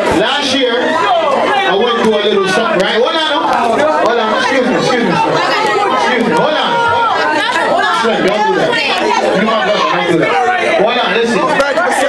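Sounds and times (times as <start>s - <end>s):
man talking into a microphone: 0.0s - 1.0s, 1.6s - 7.0s, 7.9s - 12.0s
crowd chatter: 0.0s - 12.0s.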